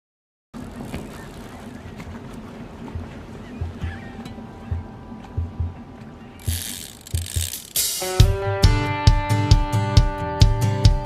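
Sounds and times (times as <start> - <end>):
water noise: 0.6 - 8.5
outboard motor hum: 0.6 - 8.6
wind: 0.6 - 10.9.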